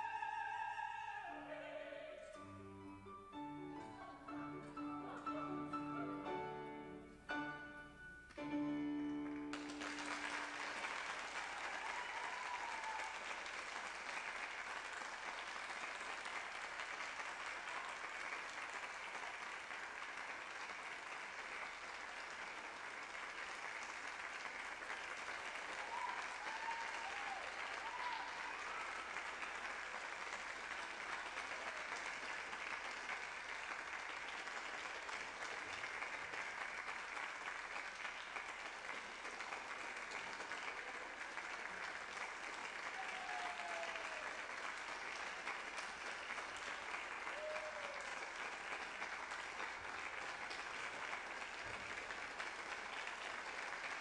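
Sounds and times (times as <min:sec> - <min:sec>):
audience applauding: 0:00.0 - 0:01.3, 0:03.3 - 0:54.0
short calls from audience: 0:25.8 - 0:29.4, 0:42.8 - 0:44.6.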